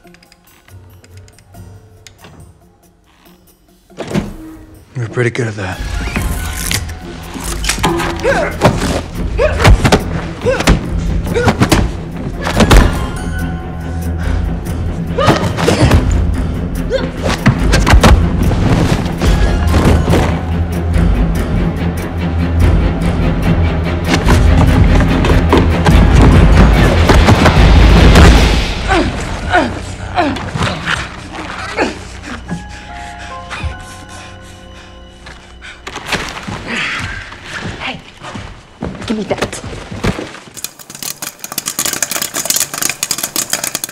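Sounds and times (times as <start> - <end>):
dramatic film score: 0.0 - 43.9
popcorn popping: 40.6 - 43.9.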